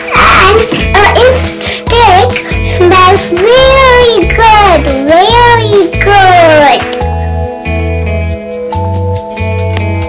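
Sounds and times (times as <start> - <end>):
child singing: 0.0 - 6.9
background music with bass line: 0.0 - 10.0.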